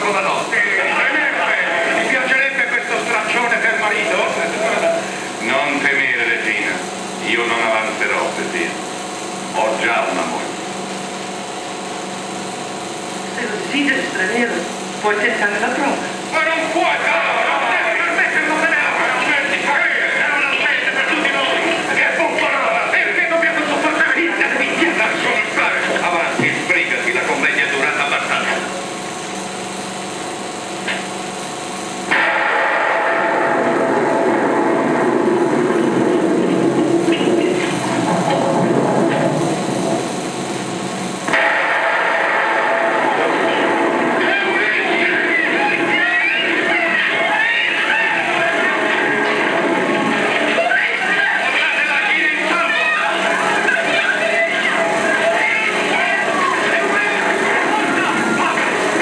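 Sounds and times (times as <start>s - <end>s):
crowd of men shouting: 41.9s - 59.0s.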